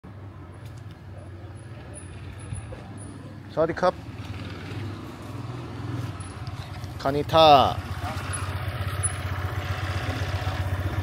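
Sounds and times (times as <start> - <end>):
motor scooter engine running: 4.1 - 11.0.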